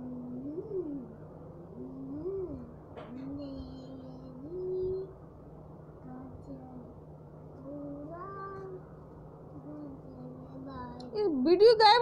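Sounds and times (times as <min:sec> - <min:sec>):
drawn-out vocal call: 0:00.0 - 0:05.2
steady low hum: 0:00.0 - 0:12.0.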